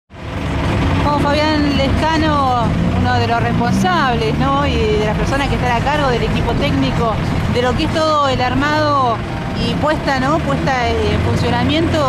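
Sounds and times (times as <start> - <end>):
vehicle engine rumbling: 0.1 - 12.0.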